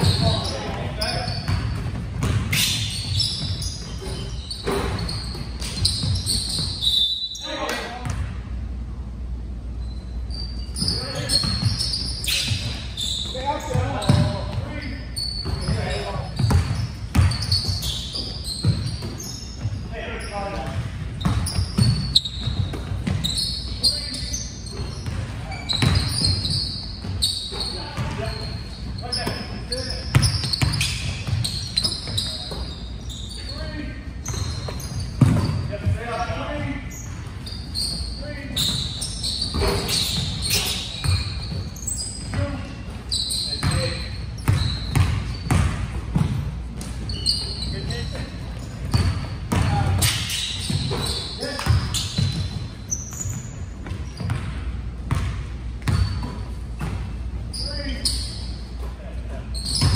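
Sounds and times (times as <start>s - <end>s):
basketball bouncing on hardwood: 1.5s - 3.6s, 35.2s - 36.0s, 44.5s - 46.5s.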